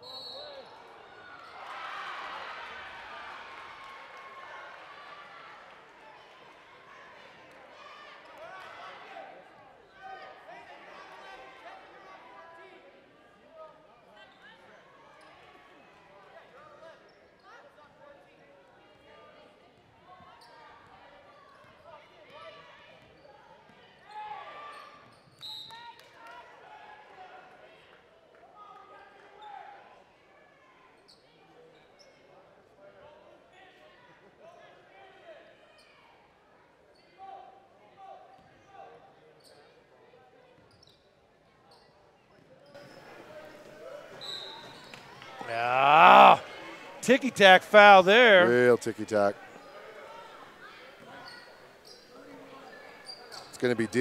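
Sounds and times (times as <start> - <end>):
indistinct voices in a gym: 42.5 - 54.0.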